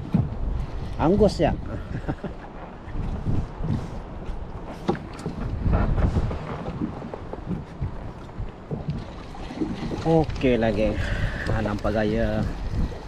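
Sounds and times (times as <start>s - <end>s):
choppy water: 0.0s - 13.0s
wind buffeting microphone: 0.0s - 13.0s.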